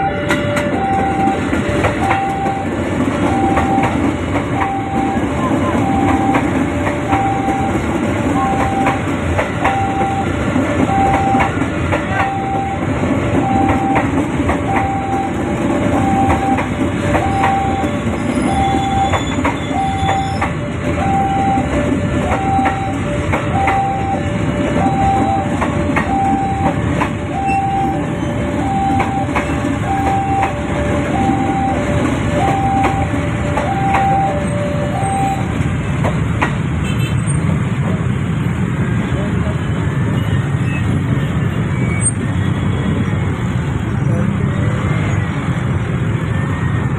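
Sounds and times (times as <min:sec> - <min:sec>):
level-crossing warning bell: 0:00.0 - 0:35.7
electric train passing: 0:00.0 - 0:36.8, 0:37.4 - 0:46.9.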